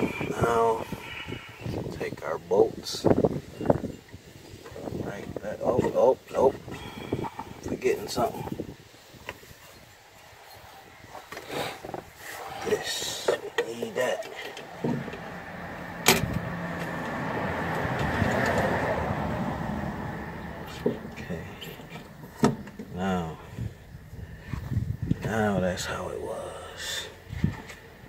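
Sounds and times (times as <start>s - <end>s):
vehicle passing: 12.2s - 22.6s
clicks and knocks of fitting parts: 16.0s - 17.2s.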